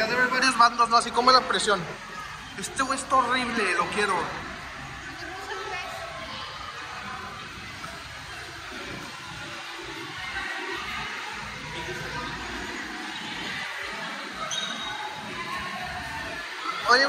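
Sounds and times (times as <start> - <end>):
far-off voices: 0.0 - 17.0.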